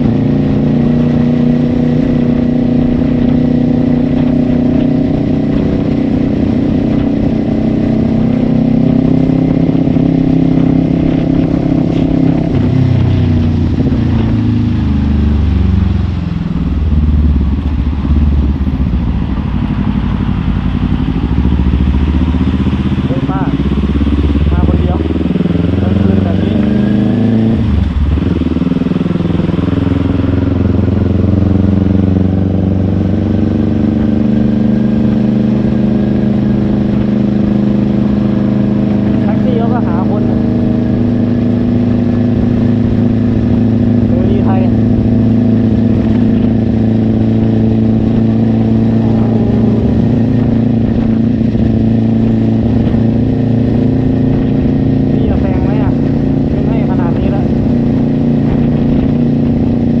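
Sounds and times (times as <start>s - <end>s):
motorcycle engine running: 0.0s - 60.0s
wind and road noise: 0.0s - 60.0s.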